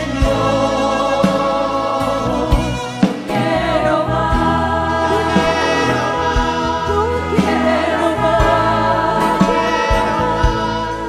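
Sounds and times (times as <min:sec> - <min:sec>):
choir singing a hymn: 0:00.0 - 0:11.0
instrumental accompaniment: 0:00.0 - 0:11.0.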